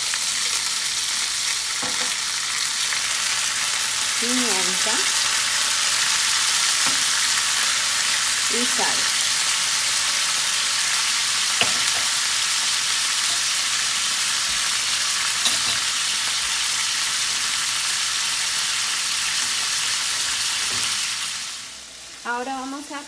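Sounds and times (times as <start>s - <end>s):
chicken frying on high heat: 0.0s - 23.0s
vegetables sizzling in a frying pan: 0.0s - 23.0s.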